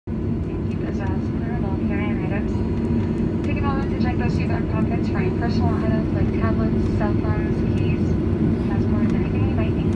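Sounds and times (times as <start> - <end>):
airplane taxiing rumble: 0.1 - 9.9
cabin announcement speech: 0.2 - 9.9.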